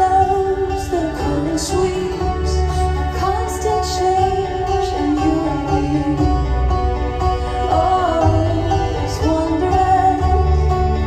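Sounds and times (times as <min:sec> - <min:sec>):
acoustic guitar strumming: 0:00.0 - 0:11.0
bass and drums: 0:00.0 - 0:11.0.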